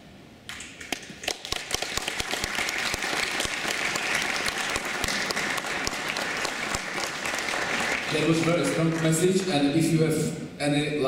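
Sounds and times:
audience applauding: 0.8s - 9.7s.

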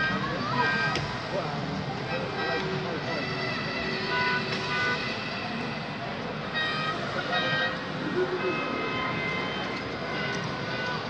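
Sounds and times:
people's voices in hall: 0.0s - 11.0s.

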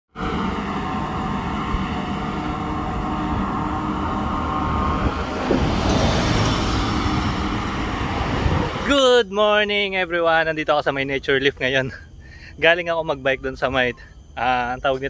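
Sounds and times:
bike tyres humming on pavement: 0.1s - 8.9s
wind buffeting microphone: 0.2s - 8.9s.

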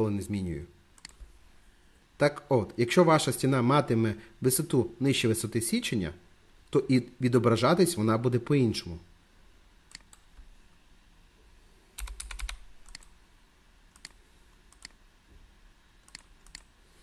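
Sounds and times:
computer mouse and key clicks: 1.0s - 1.3s, 9.9s - 10.3s, 12.0s - 13.2s, 13.9s - 15.0s, 16.0s - 16.7s.

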